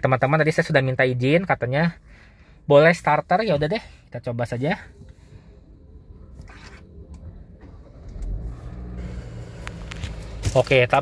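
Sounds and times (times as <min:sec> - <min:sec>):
car engine starting and idling: 0:04.9 - 0:11.0.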